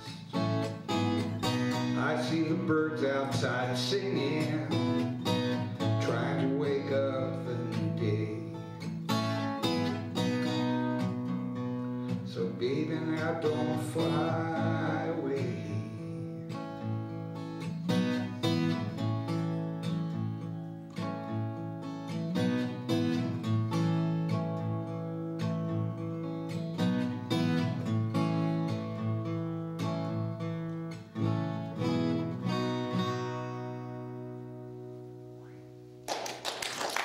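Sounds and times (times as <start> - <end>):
solo acoustic guitar: 0.0 - 36.1.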